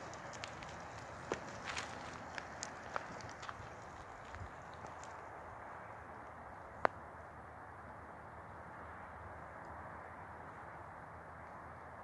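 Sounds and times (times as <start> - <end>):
wheels rolling hiss: 0.0 - 7.7
shoe scuffing asphalt: 0.2 - 4.8.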